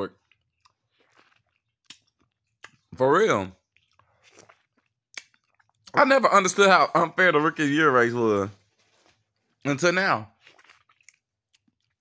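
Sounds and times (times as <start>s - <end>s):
man speaking: 2.9s - 3.6s, 5.9s - 8.6s, 9.6s - 10.3s.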